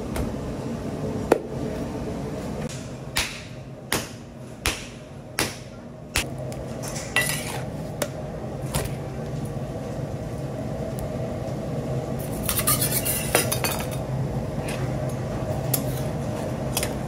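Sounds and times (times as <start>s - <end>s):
steady low hum: 0.0s - 17.0s
metal tools clinking and scraping: 6.8s - 7.6s.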